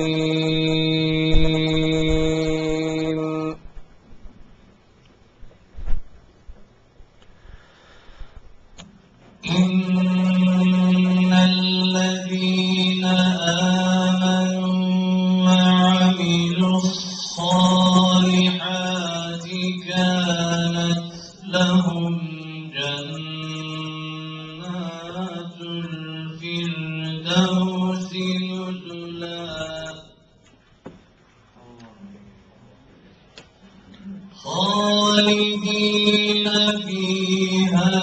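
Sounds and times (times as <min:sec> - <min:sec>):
man chanting recitation: 0:00.0 - 0:03.7, 0:09.4 - 0:30.3, 0:33.9 - 0:38.0.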